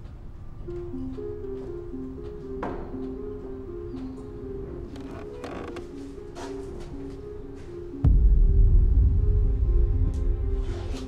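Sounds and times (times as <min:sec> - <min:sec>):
slow music with low held notes: 0:00.0 - 0:11.0
short creak: 0:04.9 - 0:06.0.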